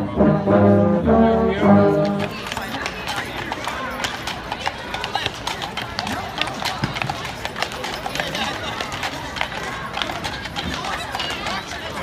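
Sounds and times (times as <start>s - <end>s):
people talking: 0.0s - 12.0s
horse hooves clip-clopping: 1.9s - 12.0s.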